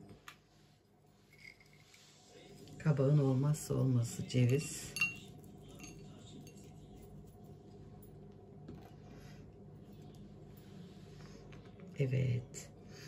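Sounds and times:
low steady hum: 0:00.0 - 0:13.0
walnut clinking on ceramic plate: 0:04.8 - 0:06.8.

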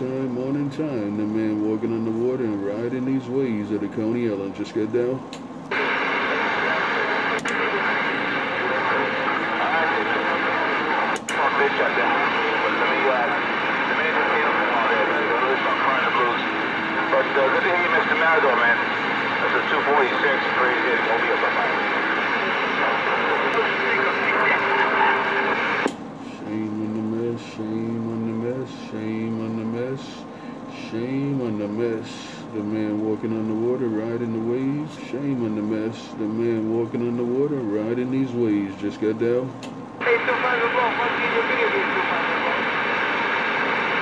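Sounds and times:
radio hiss: 0:00.0 - 0:39.4, 0:40.0 - 0:44.0
steady whining tones: 0:00.0 - 0:44.0
garbled radio voice: 0:05.7 - 0:28.7, 0:40.0 - 0:43.0.

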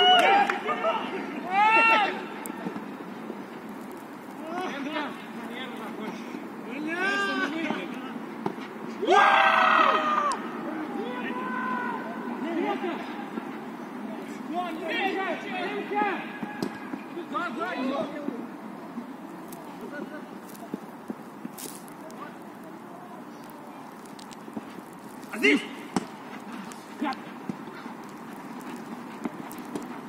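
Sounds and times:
players calling and shouting: 0:00.0 - 0:30.0.

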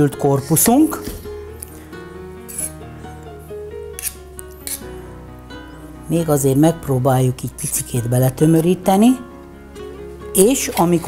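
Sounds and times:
soft background music: 0:00.0 - 0:11.0
palette knife scraping metal: 0:02.5 - 0:02.8, 0:04.0 - 0:04.9.

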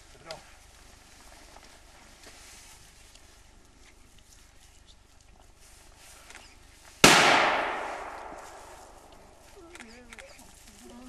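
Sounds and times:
gunshot echoing: 0:07.0 - 0:09.4.

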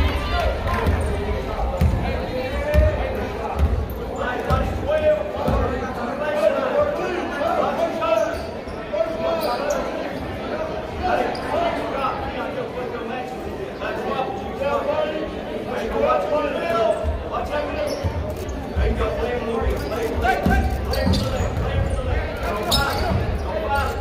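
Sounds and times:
chatter of spectators: 0:00.0 - 0:24.0.

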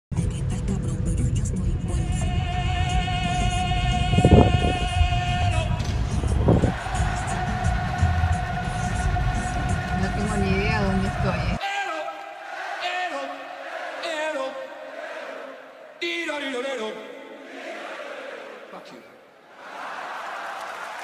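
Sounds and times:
music playing: 0:00.1 - 0:11.6.

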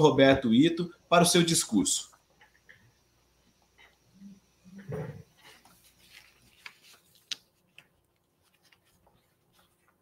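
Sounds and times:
person clearing throat: 0:04.8 - 0:05.2.

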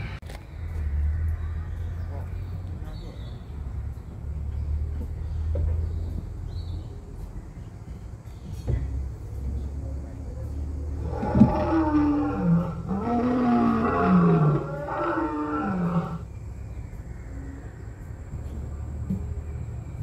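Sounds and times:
dinosaur roar through speaker: 0:11.0 - 0:16.3.

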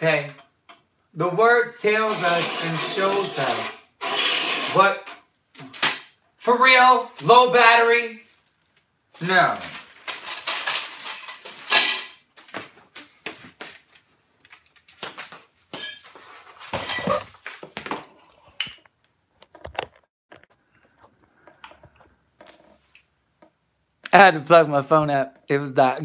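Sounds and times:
objects clinking and knocking: 0:09.6 - 0:12.2.

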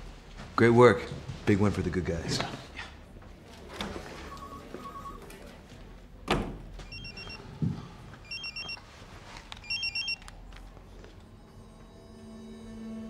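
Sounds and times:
pager beeping: 0:06.9 - 0:07.4, 0:08.2 - 0:08.8, 0:09.6 - 0:10.2.

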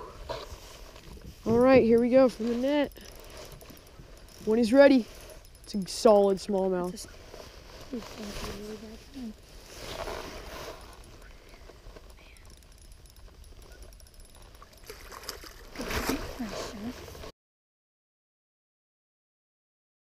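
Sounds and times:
water swishing and splashing: 0:14.3 - 0:17.3.

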